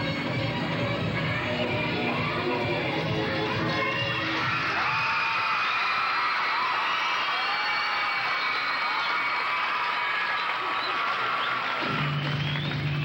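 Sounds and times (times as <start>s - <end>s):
audience cheering and whooping: 4.1s - 13.0s.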